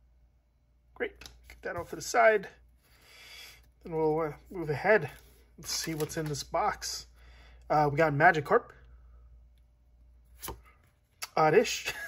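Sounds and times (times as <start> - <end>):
trading cards being handled: 3.5 - 6.9.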